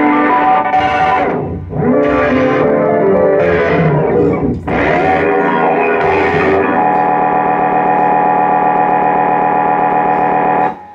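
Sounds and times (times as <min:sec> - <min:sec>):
distorted electric guitars: 0:00.0 - 0:10.9.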